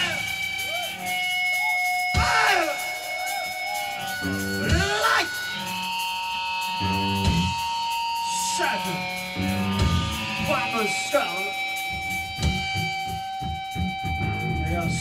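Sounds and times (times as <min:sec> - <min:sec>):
electric guitar sliding notes: 0:00.0 - 0:15.0
punk rock band playing chords: 0:00.0 - 0:15.0.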